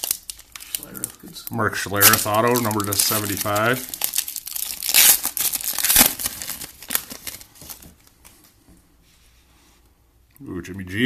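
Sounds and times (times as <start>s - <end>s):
foil pack tearing and crinkling: 0.0s - 1.1s, 1.9s - 7.8s.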